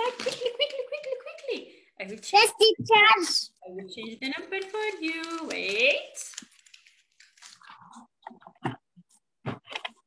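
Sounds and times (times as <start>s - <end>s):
rustling and clicking handling noise: 4.4s - 7.7s.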